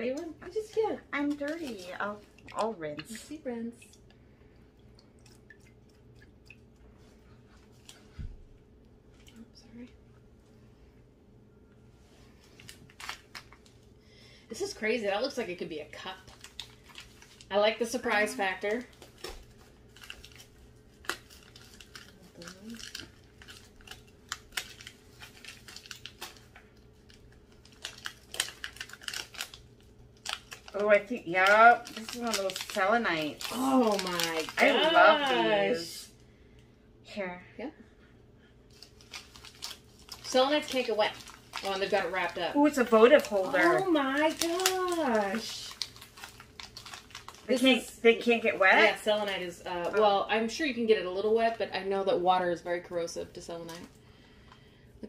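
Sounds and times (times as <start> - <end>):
plastic crinkling: 0.0 - 3.3, 12.2 - 13.9, 14.7 - 35.6, 38.7 - 50.3
low room hum: 0.0 - 55.0
water dripping and splashing: 1.6 - 7.1.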